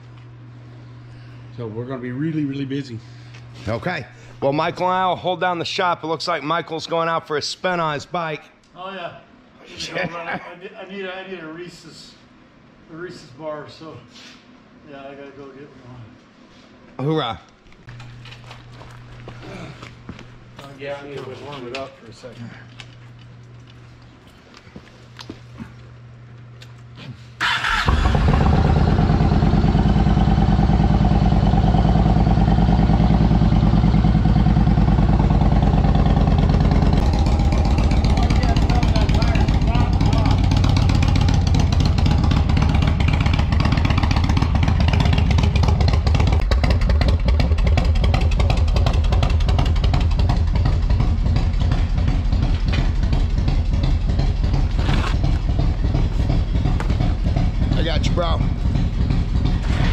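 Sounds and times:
motorcycle engine starting and idling: 27.4s - 59.9s.

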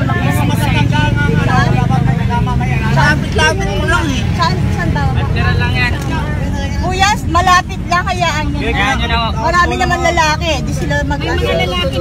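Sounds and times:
engine rumble: 0.0s - 12.0s
voices talking: 0.0s - 12.0s.

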